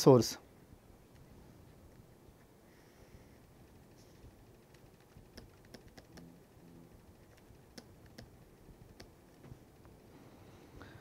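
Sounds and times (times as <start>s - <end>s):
pen stylus tapping on tablet: 4.6s - 6.4s, 7.2s - 9.5s.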